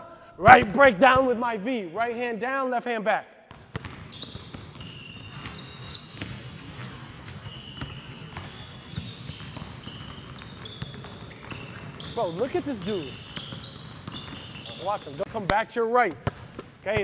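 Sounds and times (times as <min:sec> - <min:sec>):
sneaker squeaks: 0:03.5 - 0:15.6
basketballs dribbled on hardwood: 0:03.5 - 0:17.0.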